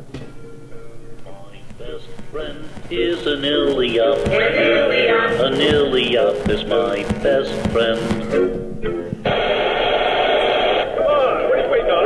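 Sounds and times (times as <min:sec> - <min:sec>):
burst of radio static: 0:01.6 - 0:08.6, 0:09.2 - 0:12.0.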